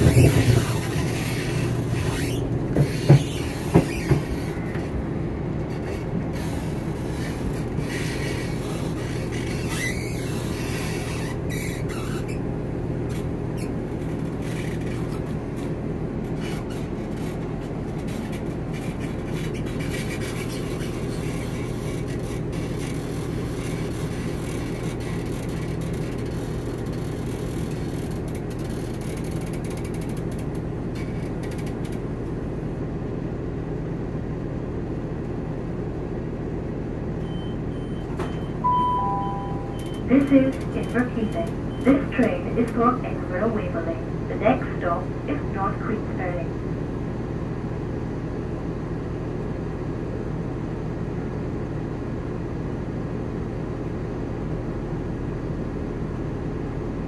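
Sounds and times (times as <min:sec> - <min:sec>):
train engine and wheels rumbling: 0:00.0 - 0:57.0
two-note public-address chime: 0:38.7 - 0:39.8.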